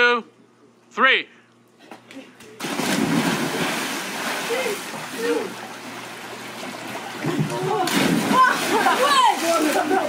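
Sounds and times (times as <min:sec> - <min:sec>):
loud splash into pool: 0:02.6 - 0:05.4, 0:07.2 - 0:10.0
churning sloshing water: 0:02.6 - 0:10.0.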